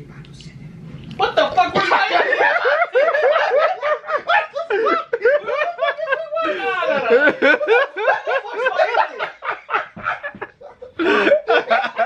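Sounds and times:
man laughing hard: 0:01.8 - 0:12.0.

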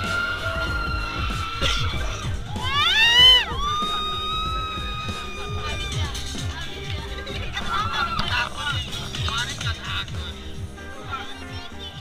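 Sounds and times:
riders screaming: 0:00.0 - 0:06.4
background music with low beat: 0:00.0 - 0:12.0.

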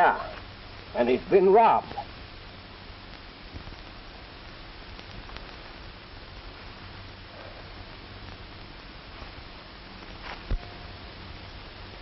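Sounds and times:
old film soundtrack hiss: 0:00.0 - 0:12.0.

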